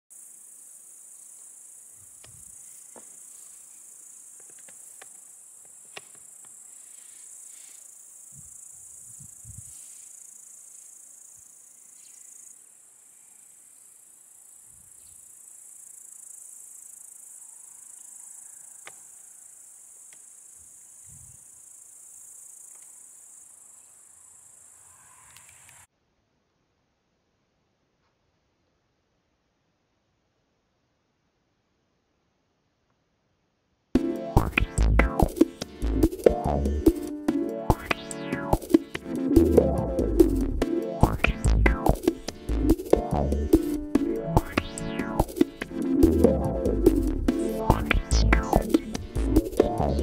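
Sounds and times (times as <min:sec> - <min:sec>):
insects chirring: 0:00.1 - 0:25.9, 0:34.0 - 0:50.0
faint clicks: 0:25.2 - 0:25.9.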